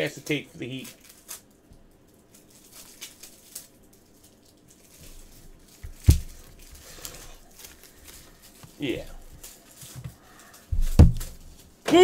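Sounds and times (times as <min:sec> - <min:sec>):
heavy thump: 0:10.7 - 0:11.4.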